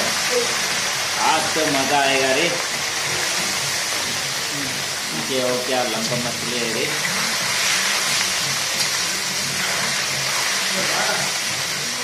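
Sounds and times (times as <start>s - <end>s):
fish frying in hot oil: 0.0s - 12.0s.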